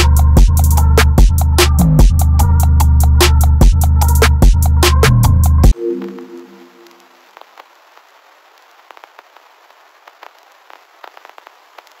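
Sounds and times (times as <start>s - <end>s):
thin hiss with crackles and pops: 5.8s - 12.0s.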